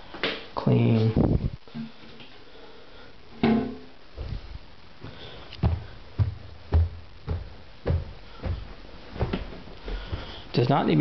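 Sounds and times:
footsteps on a hard floor: 0:04.2 - 0:10.5.

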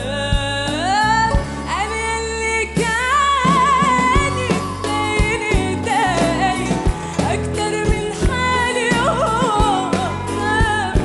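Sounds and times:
live band playing: 0:00.0 - 0:11.0
woman singing: 0:00.0 - 0:11.0.

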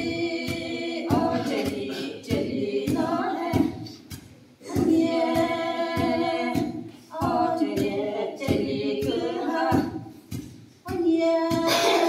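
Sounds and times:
women singing unaccompanied: 0:00.0 - 0:10.2, 0:10.8 - 0:12.0.

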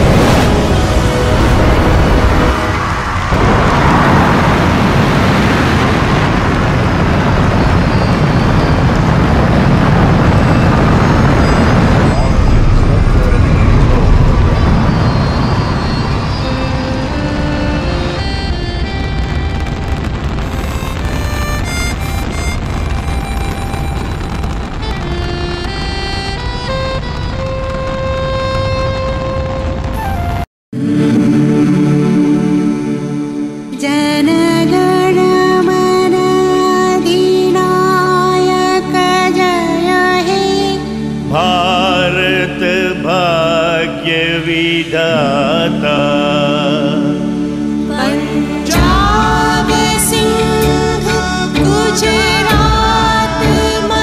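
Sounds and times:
music: 0:00.0 - 0:03.4, 0:12.2 - 0:54.0
rocket launch roar: 0:00.0 - 0:33.7
slow music track: 0:13.2 - 0:54.0.

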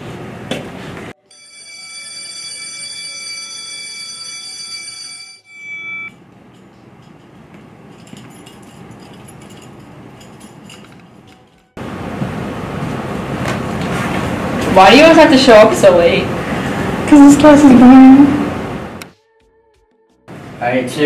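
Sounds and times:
electronic school bell: 0:01.2 - 0:06.2.

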